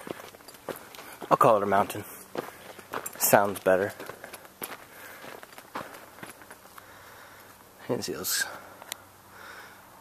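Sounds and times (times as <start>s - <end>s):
footsteps on dirt: 0.0s - 8.0s
faint outdoor background: 0.0s - 10.0s.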